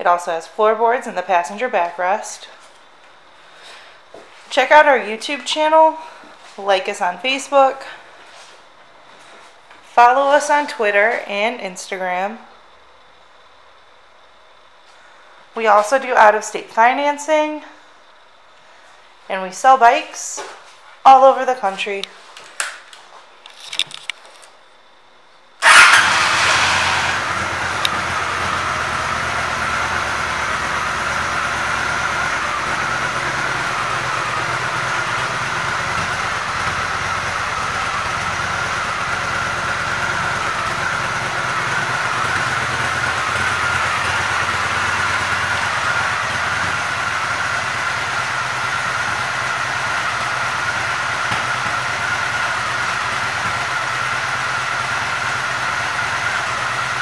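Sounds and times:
motorcycle engine idling: 25.6 - 57.0.

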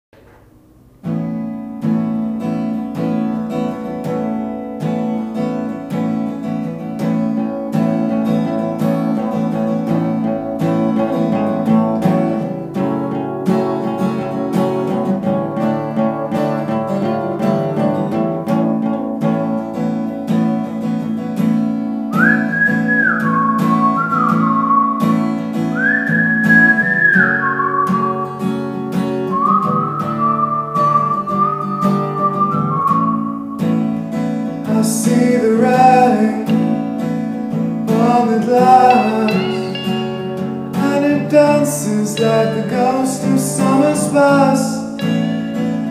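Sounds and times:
acoustic guitar: 0.2 - 45.9
whistled melody: 22.1 - 34.2, 37.9 - 45.9.

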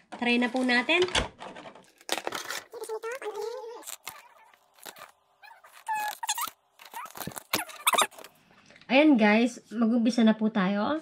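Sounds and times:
paper rustling: 1.8 - 8.4.

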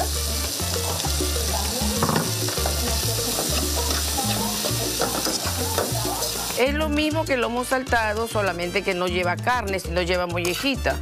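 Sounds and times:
food sizzling in a wok: 0.0 - 9.0.

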